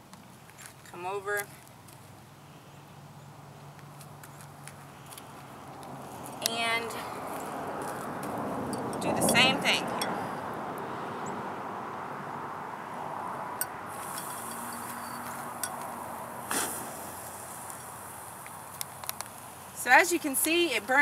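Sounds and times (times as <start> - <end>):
high hiss of chemical reaction: 13.9 - 19.9
spoon clinking glass jar: 14.1 - 15.8.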